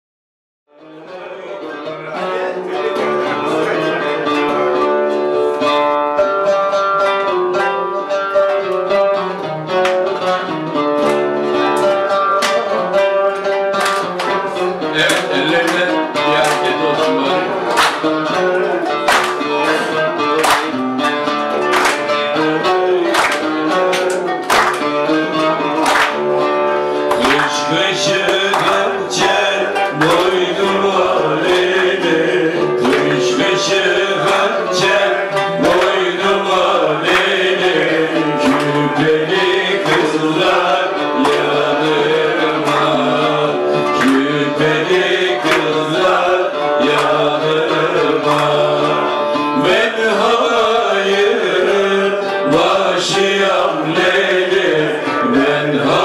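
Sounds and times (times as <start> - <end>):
oud plucked melody: 0.8 - 56.0.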